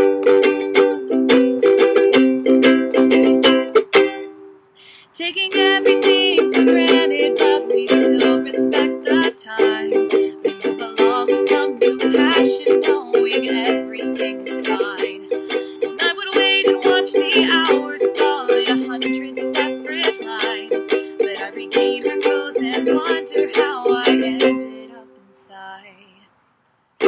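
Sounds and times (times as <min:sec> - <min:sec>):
ukulele strumming: 0:00.0 - 0:26.1.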